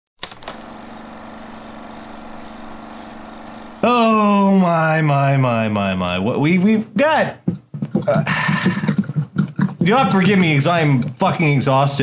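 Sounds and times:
low buzzing tone: 0.6 - 3.8
person speaking loudly: 3.8 - 7.5, 9.8 - 12.0.

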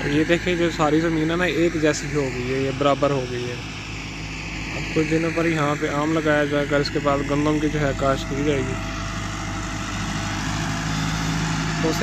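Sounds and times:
distant tractor engine humming: 0.0 - 12.0.

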